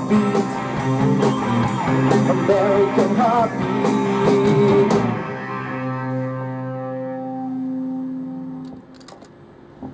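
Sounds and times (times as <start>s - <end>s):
rock band chord ringing out: 0.0s - 8.7s
small clicks: 8.6s - 9.4s.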